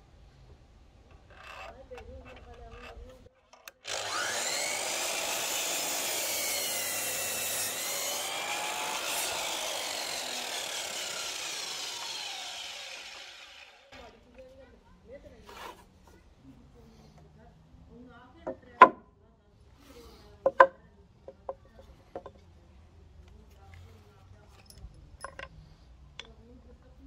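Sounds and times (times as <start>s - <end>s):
mitre saw cutting wood: 3.7s - 14.3s.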